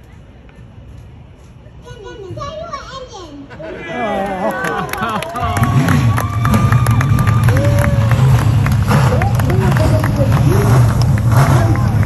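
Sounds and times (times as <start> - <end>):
race car engines rumbling: 3.4 - 12.0.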